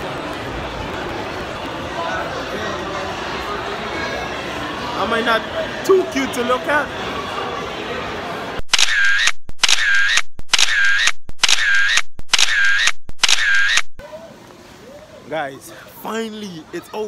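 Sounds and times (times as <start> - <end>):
crowd noise: 0.0 - 17.0
camera shutter sound effect: 8.6 - 14.0.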